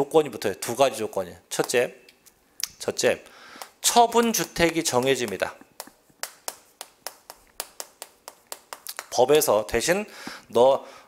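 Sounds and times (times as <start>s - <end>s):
chalk tapping on chalkboard: 3.6s - 9.5s.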